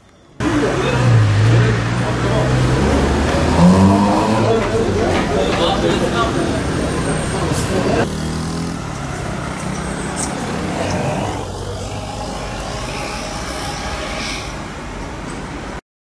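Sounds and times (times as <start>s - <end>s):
road noise: 0.0s - 15.8s
vehicle engines running: 0.4s - 15.8s.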